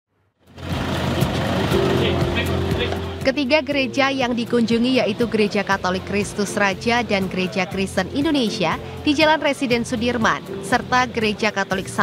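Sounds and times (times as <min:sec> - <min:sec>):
street noise: 0:00.4 - 0:12.0
vehicle engine running: 0:00.4 - 0:12.0
background music: 0:00.5 - 0:12.0.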